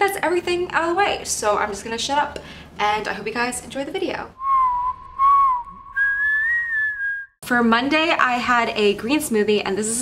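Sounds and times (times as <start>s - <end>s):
person whistling a tune: 4.4s - 7.4s.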